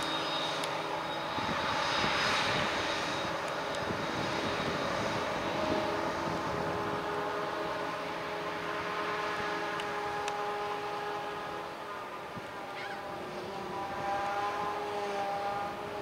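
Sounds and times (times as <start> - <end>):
harvester engine drone: 0.0 - 16.0
tractor running: 0.0 - 16.0
whining tones: 0.0 - 16.0.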